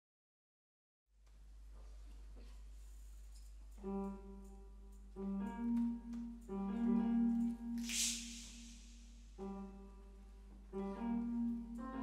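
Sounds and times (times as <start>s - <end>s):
hissing high sound: 7.8s - 9.2s.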